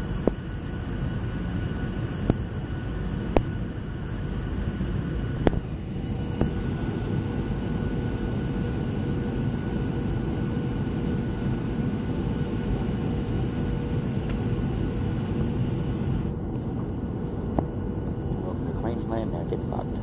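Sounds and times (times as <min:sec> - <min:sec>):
faint steady whine: 0:00.0 - 0:20.0
jet engine drone: 0:00.0 - 0:20.0
airflow rush: 0:01.7 - 0:19.0.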